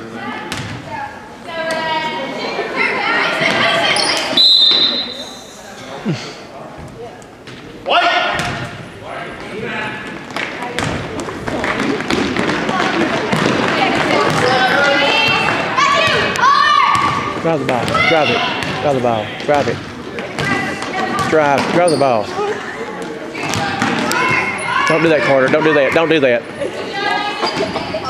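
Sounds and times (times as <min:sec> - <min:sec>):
spectators' voices: 0:00.0 - 0:28.0
referee's whistle blast: 0:04.3 - 0:05.4.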